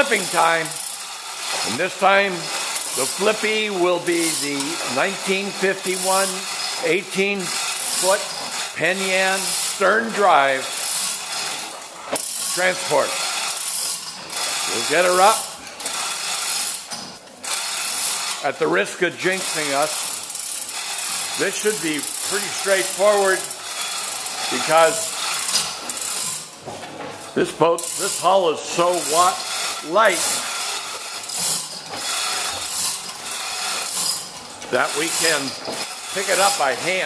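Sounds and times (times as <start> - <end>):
chain hoist rattling and clicking: 0.0 - 37.0
chain rattling: 19.4 - 37.0.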